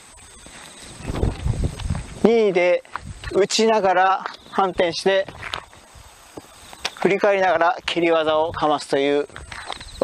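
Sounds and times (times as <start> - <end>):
sneakers shuffling on asphalt: 0.4 - 7.6, 8.5 - 10.0.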